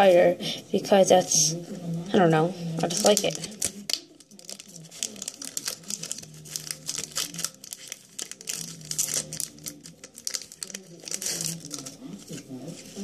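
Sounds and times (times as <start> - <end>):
foil wrapper crinkling and tearing: 2.9 - 13.0.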